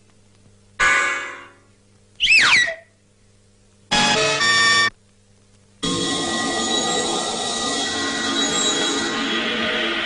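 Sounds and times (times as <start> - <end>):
wobbling whistle-like tone: 2.2 - 2.9.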